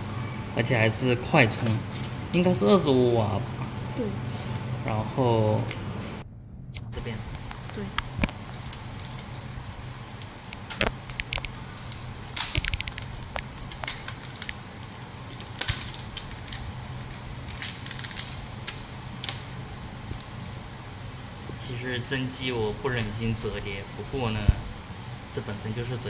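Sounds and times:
steady low hum: 0.0s - 26.0s
plastic film peeling crackles: 7.2s - 21.0s
film tearing rasps: 7.3s - 19.6s.

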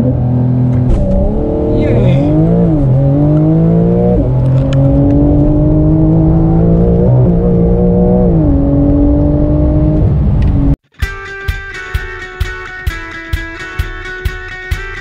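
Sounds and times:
car engine accelerating: 0.0s - 10.8s
guitar music: 10.9s - 15.0s.

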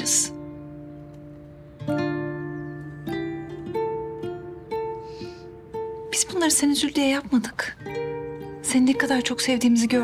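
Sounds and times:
plucked strings music: 0.0s - 10.0s.

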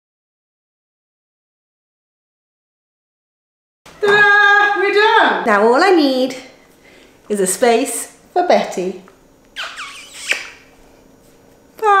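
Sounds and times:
woman calling bye: 4.0s - 5.5s, 11.8s - 12.0s.

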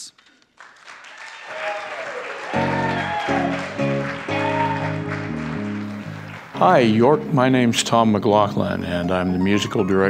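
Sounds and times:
audience applause: 0.5s - 7.2s.

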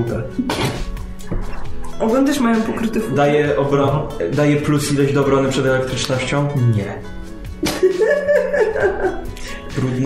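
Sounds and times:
background music: 0.0s - 10.0s
person laughing: 7.6s - 9.5s.

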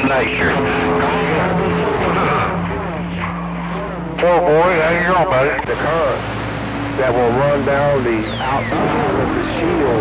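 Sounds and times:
radio static and hiss: 0.0s - 10.0s
steady low hum: 0.0s - 10.0s.

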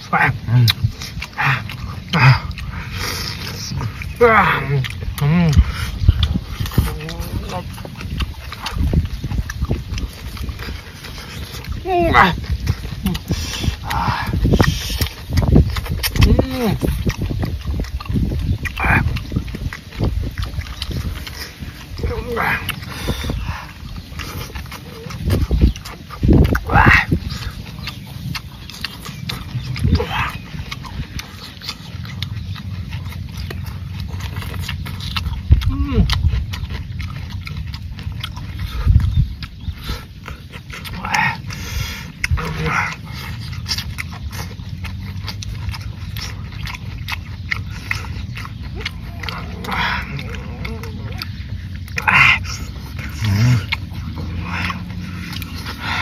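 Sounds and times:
chewing and slurping: 0.0s - 56.0s.

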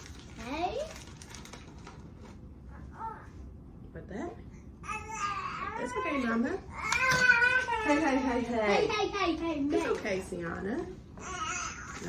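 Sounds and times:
plastic bag crinkling: 0.0s - 2.4s.

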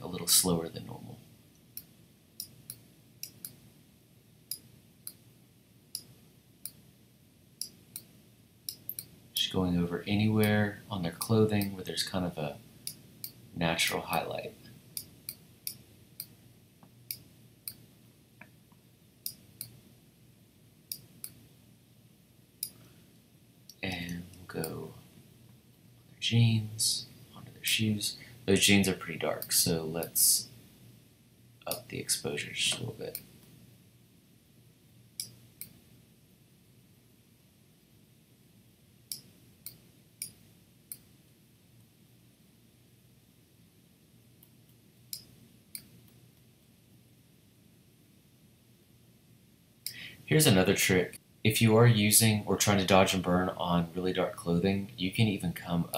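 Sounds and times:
faint low hum: 0.0s - 55.9s.

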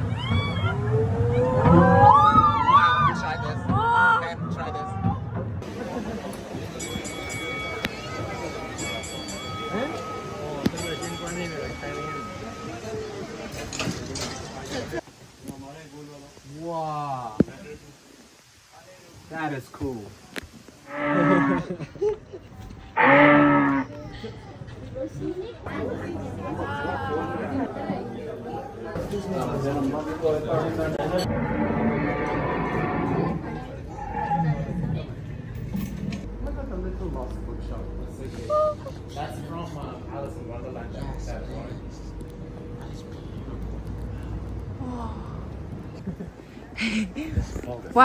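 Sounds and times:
passengers whooping and shrieking: 0.0s - 5.1s
railway carriage rumble: 0.0s - 15.3s, 23.5s - 48.0s.

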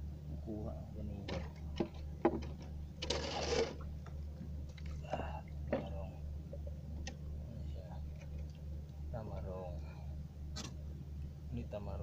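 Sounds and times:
small engine humming: 3.0s - 3.8s.

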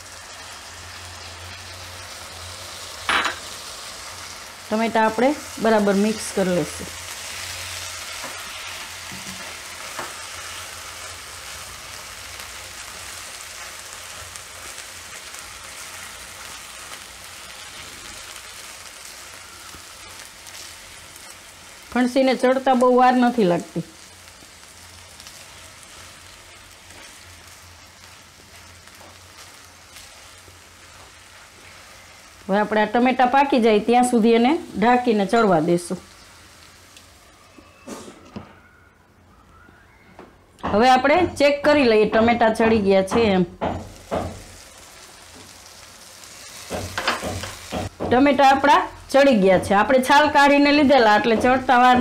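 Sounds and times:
vegetables frying in a pan: 0.0s - 37.6s, 40.7s - 52.0s.

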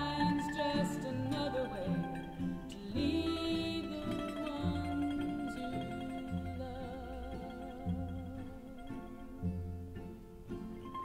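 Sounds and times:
woman singing: 0.0s - 9.4s
cello: 0.0s - 11.0s
strummed acoustic guitar: 0.0s - 11.0s.

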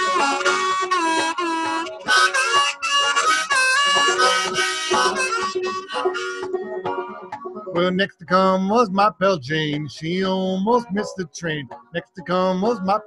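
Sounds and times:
harmonica melody: 0.0s - 13.0s.

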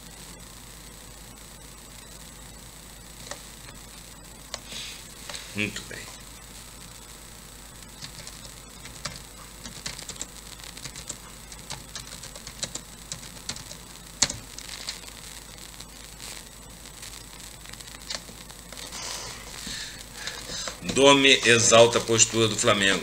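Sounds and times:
computer keys clicking: 8.0s - 14.4s.

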